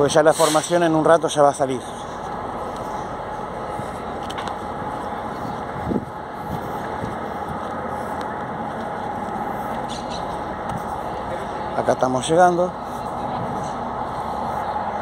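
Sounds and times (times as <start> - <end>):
street traffic rumble: 0.0 - 15.0.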